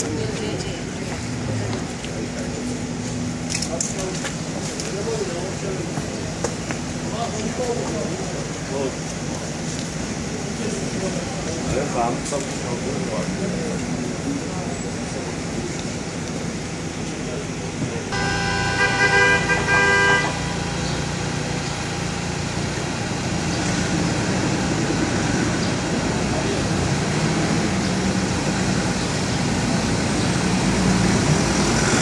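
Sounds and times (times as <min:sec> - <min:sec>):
cars pulling away over cobblestones: 0:00.0 - 0:32.0
car horn: 0:18.1 - 0:21.2.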